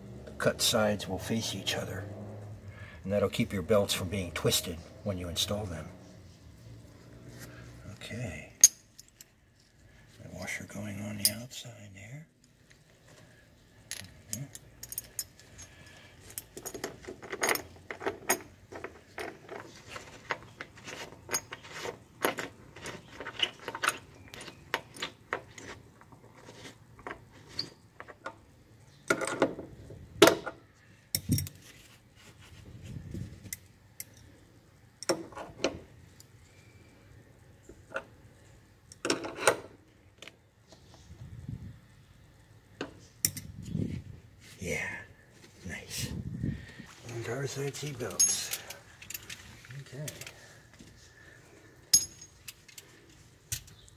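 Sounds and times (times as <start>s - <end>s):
metal hardware clinking and rattling: 8.6s - 9.7s, 13.8s - 25.7s, 31.1s - 31.6s, 47.7s - 50.5s, 51.8s - 53.8s.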